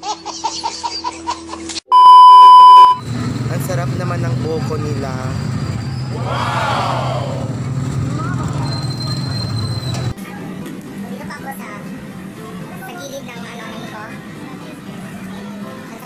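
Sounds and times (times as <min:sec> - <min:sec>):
loud electronic beep: 0:01.9 - 0:03.1
loud call rising and falling: 0:06.0 - 0:07.9
people's voices: 0:06.1 - 0:10.3.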